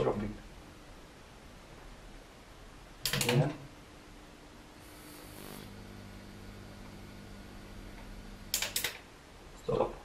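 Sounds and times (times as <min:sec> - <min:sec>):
faint low electrical hum: 0:00.0 - 0:10.0.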